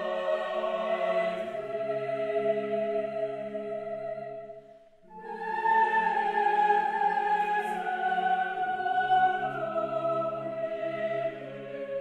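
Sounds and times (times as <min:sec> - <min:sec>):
choir singing: 0:00.0 - 0:12.0.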